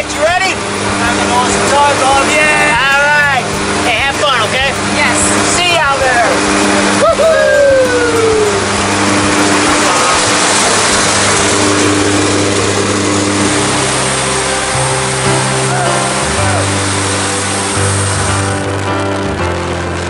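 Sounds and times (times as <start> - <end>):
aircraft engines droning: 0.0 - 20.0
music with slow bass line: 0.0 - 20.0
wind rushing: 0.5 - 18.7.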